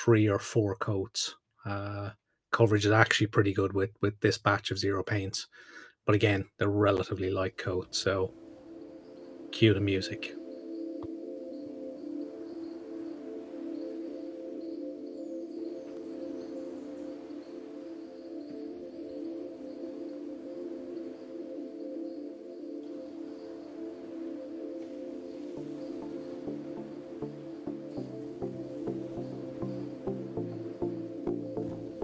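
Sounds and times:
ambient music with held chords: 0:07.9 - 0:32.0.

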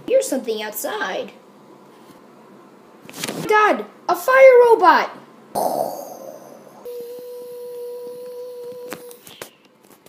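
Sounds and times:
steady tone: 0:05.6 - 0:08.9.

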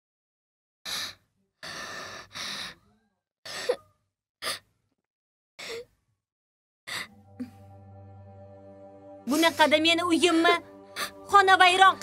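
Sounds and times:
person breathy sighs: 0:06.9 - 0:07.6.

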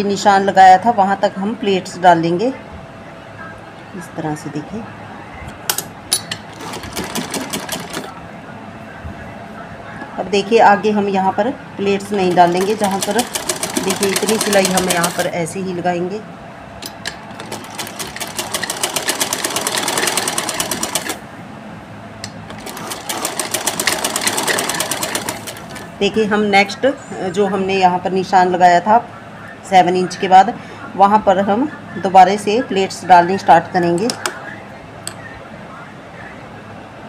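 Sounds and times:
sewing machine stitching: 0:06.4 - 0:08.1, 0:12.4 - 0:15.3, 0:17.3 - 0:21.2, 0:22.5 - 0:25.9.

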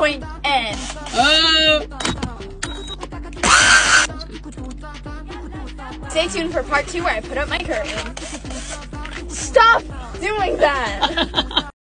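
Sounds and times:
background music: 0:00.0 - 0:11.8
cordless drill driving screw: 0:03.4 - 0:04.1.

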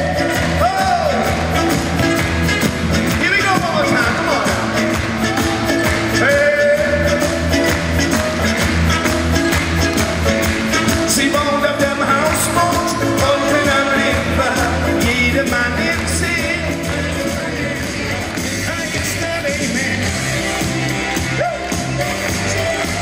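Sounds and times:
man singing: 0:00.0 - 0:02.2, 0:03.0 - 0:23.0
full band with drum beat: 0:00.0 - 0:23.0.

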